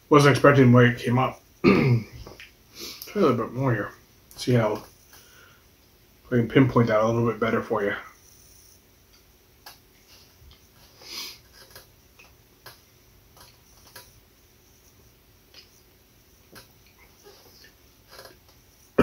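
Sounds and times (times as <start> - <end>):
breathy sniff: 2.7 - 3.1, 10.0 - 11.7.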